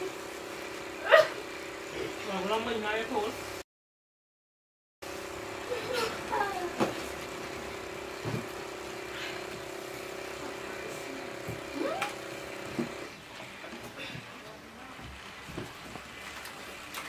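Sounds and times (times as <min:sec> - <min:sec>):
motor humming: 0:05.1 - 0:13.2.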